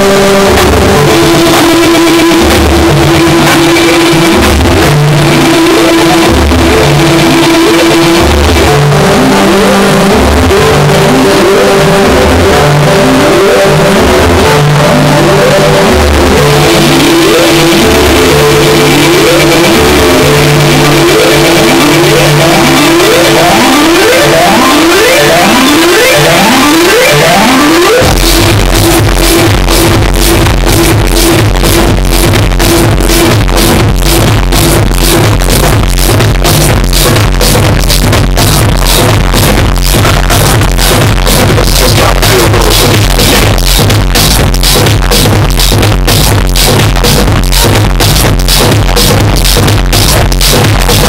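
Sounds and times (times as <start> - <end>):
kick-drum beat: 0.0 - 9.3, 9.9 - 51.0
tech house music: 0.0 - 51.0
rising synth sweeps: 12.6 - 35.6.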